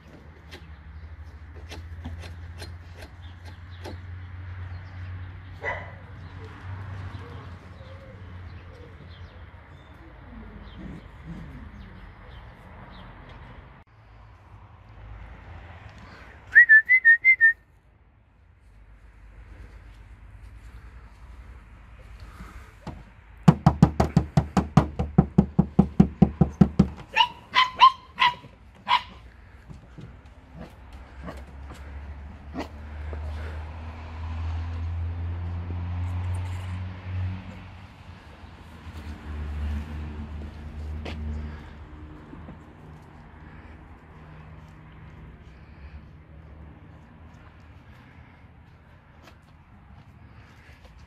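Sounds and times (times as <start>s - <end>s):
dog barking: 5.6s - 6.0s, 27.1s - 29.2s
dog yipping: 5.6s - 6.0s, 27.1s - 29.2s
puppy yelp: 27.1s - 29.2s.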